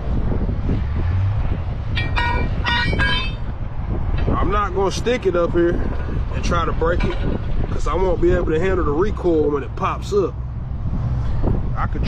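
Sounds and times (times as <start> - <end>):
vehicle noise: 0.0 - 12.0
wind rumble: 0.0 - 12.0
short horn toots: 2.0 - 3.5.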